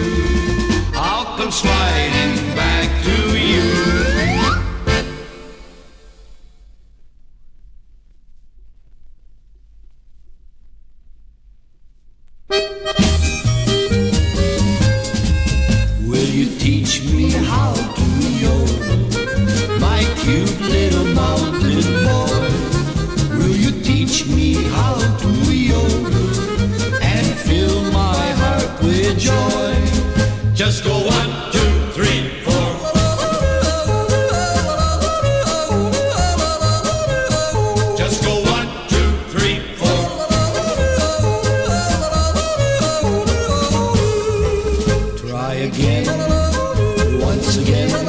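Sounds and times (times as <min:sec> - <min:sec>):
polka band playing: 0:00.0 - 0:06.0, 0:12.5 - 0:48.0
oom-pah bass: 0:00.0 - 0:06.8, 0:12.5 - 0:48.0
accordion chord: 0:01.9 - 0:06.4, 0:12.5 - 0:16.0, 0:17.7 - 0:23.6, 0:31.2 - 0:45.2
faint low vinyl rumble: 0:05.5 - 0:33.1
person yodeling: 0:16.1 - 0:48.0.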